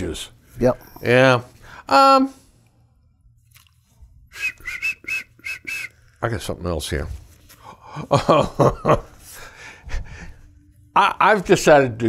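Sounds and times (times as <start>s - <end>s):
man whistling short notes: 4.3s - 6.2s.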